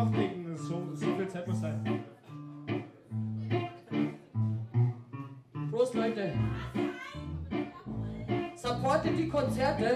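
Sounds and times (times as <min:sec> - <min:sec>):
electric guitar single low notes: 0:00.0 - 0:09.9.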